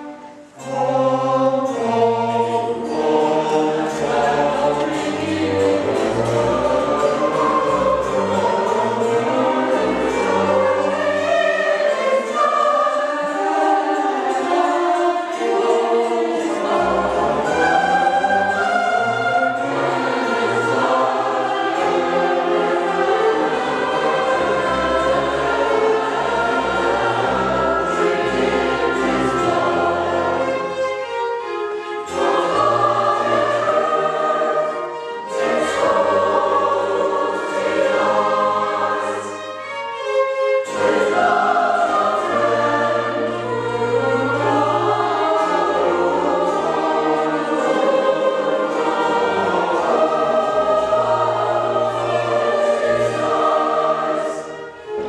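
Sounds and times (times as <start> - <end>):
mixed choir singing: 0.0 - 55.0
string orchestra: 0.0 - 55.0.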